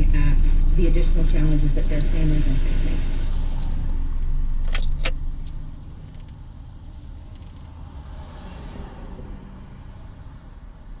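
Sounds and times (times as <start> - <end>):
low rumble of street traffic: 0.0 - 11.0
vehicle passing: 0.0 - 11.0.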